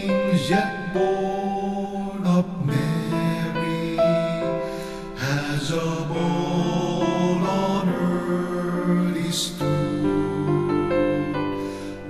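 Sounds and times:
man singing a hymn: 0:00.0 - 0:12.0
piano and orchestra: 0:00.0 - 0:12.0.

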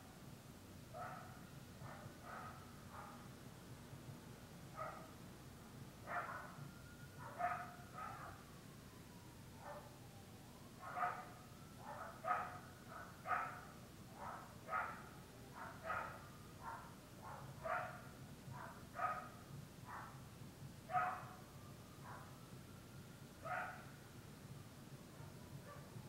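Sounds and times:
dog barking: 0:00.9 - 0:03.2, 0:04.8 - 0:05.1, 0:06.1 - 0:06.6, 0:07.2 - 0:08.4, 0:09.6 - 0:09.9, 0:10.8 - 0:20.2, 0:20.9 - 0:21.4, 0:22.0 - 0:22.3, 0:23.4 - 0:23.9, 0:25.2 - 0:25.9.

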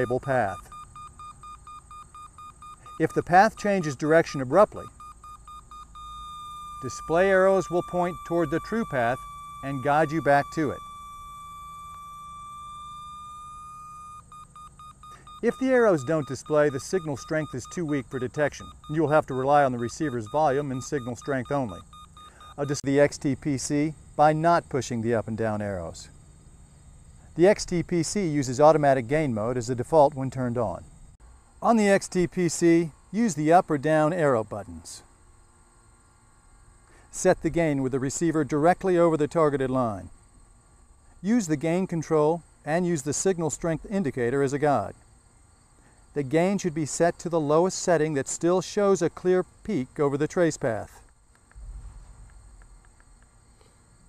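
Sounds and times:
electronic locator tone: 0:00.0 - 0:23.0
rapid pulsing beeps: 0:00.0 - 0:23.7
faint background hum: 0:00.0 - 0:54.0.

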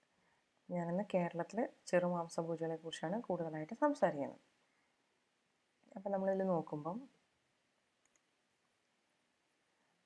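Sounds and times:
faint short clicks: 0:08.0 - 0:08.3.

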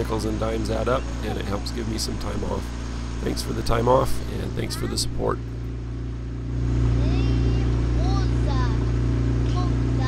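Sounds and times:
outboard motor running: 0:00.0 - 0:10.0
child's high voice: 0:04.6 - 0:05.2, 0:07.0 - 0:08.9, 0:09.5 - 0:10.0.

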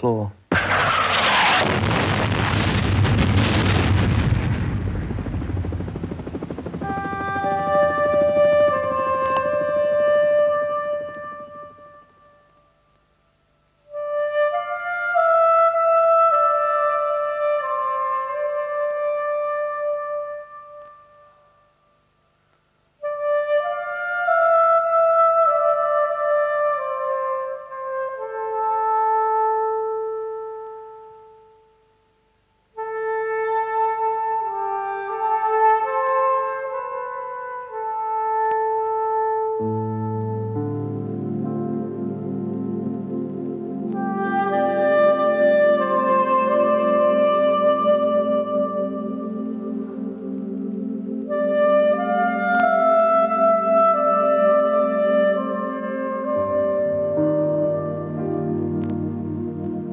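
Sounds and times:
held brass note: 0:05.3 - 0:12.5, 0:43.9 - 0:50.3, 0:51.2 - 0:59.9.

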